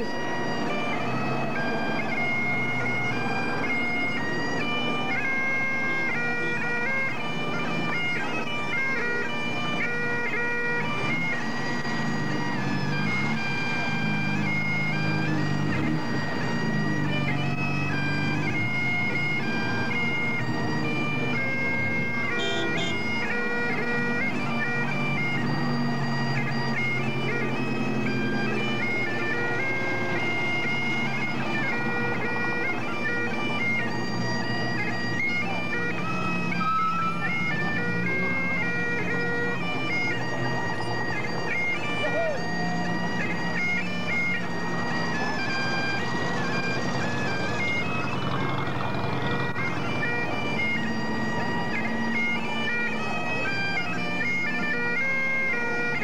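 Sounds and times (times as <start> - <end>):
bagpipes playing a tune: 0.0 - 56.0.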